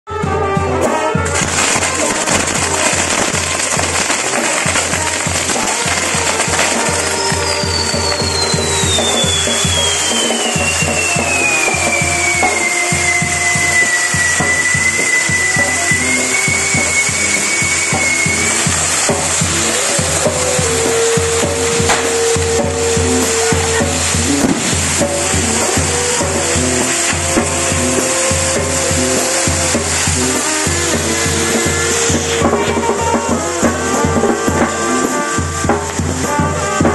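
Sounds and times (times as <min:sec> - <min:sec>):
falling firework whistle: 0:00.8 - 0:36.9
fireworks hissing and crackling: 0:00.9 - 0:36.9.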